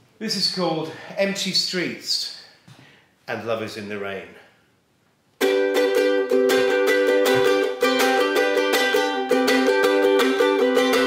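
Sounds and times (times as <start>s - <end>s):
ukulele strumming chords: 5.4s - 11.0s.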